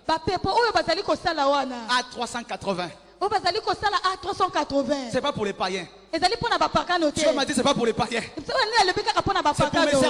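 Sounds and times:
man preaching: 0:01.6 - 0:03.1, 0:06.9 - 0:08.4, 0:09.4 - 0:10.0.

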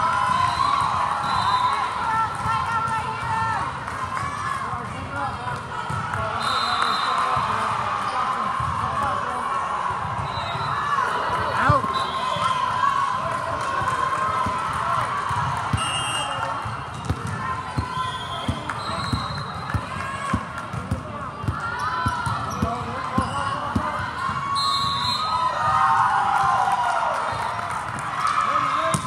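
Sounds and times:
echoing hubbub of voices: 0:01.0 - 0:24.6.

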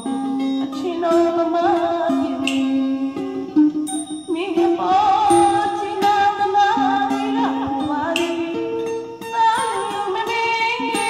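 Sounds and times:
woman singing into a microphone: 0:00.0 - 0:03.6, 0:04.2 - 0:11.0
plucked string instrument: 0:00.0 - 0:11.0.

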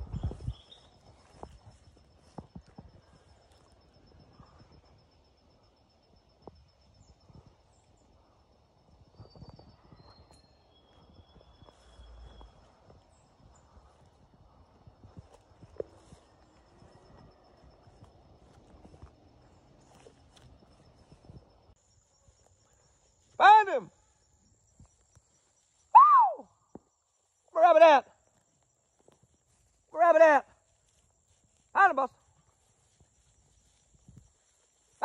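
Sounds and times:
footsteps through grass: 0:00.0 - 0:04.6, 0:10.9 - 0:23.4, 0:28.3 - 0:35.0
faint steady high tone: 0:00.0 - 0:27.5.

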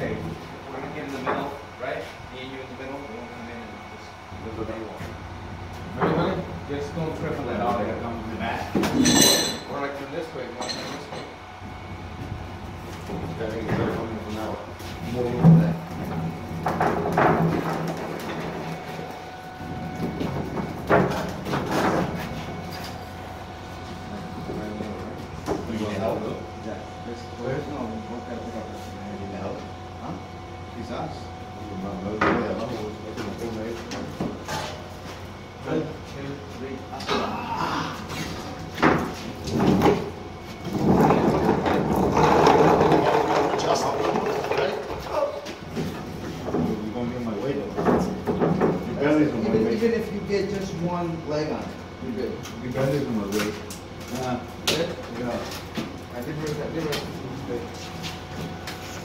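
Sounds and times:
men calling out: 0:36.9 - 0:38.2
casters rolling on concrete: 0:39.4 - 0:46.9.

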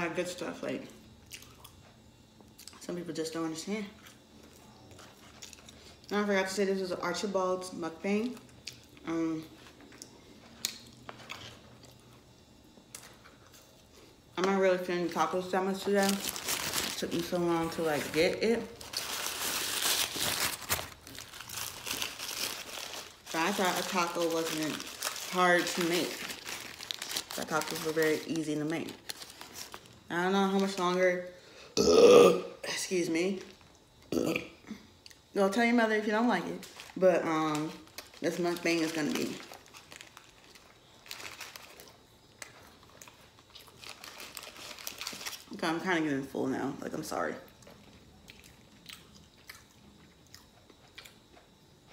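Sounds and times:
paper wrapper crinkling: 0:15.5 - 0:30.8, 0:36.4 - 0:45.6
chewing: 0:47.6 - 0:51.9.

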